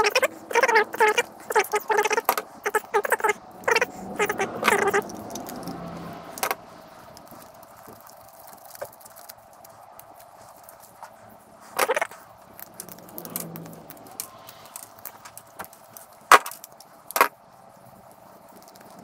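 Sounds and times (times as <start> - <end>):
small plastic parts clicking and rattling: 0.0 - 19.0.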